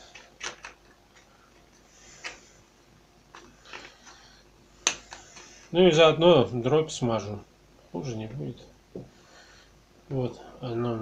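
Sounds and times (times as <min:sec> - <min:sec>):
pellets clicking and tapping: 0:00.0 - 0:02.6, 0:03.3 - 0:05.7.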